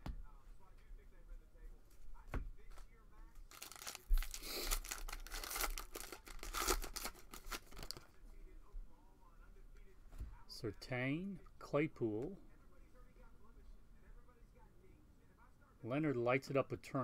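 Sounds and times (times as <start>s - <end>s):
crinkling crackle: 2.7s - 8.2s
plastic wrapper tearing: 3.5s - 8.0s.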